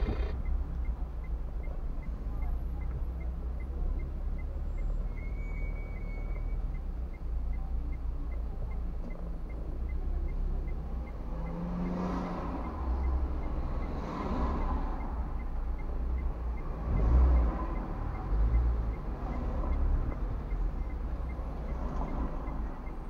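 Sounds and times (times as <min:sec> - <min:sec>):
car engine running: 0:00.0 - 0:04.2
traffic rumble: 0:00.0 - 0:23.0.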